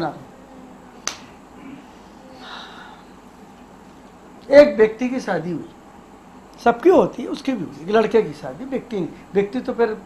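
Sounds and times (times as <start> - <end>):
finger snap: 1.0 - 1.3.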